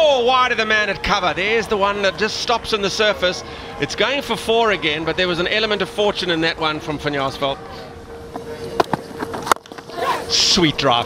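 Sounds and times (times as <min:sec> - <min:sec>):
faint crowd noise: 0:00.0 - 0:11.0
steady hum: 0:00.0 - 0:11.0.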